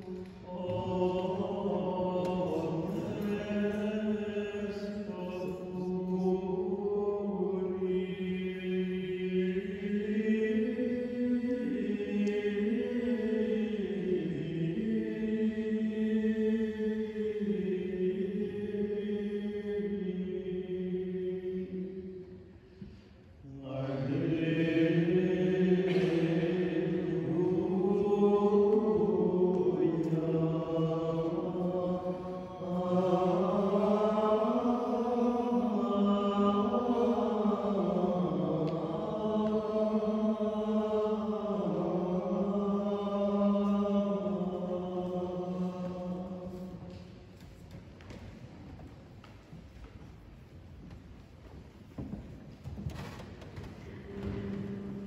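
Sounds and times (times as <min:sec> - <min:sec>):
monks singing plainchant: 0:00.0 - 0:47.2, 0:53.8 - 0:55.0.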